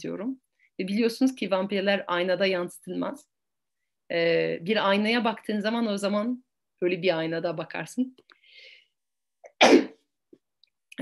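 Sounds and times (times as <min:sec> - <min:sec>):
faint breath: 0:08.3 - 0:09.0
loud sneeze: 0:09.5 - 0:10.0.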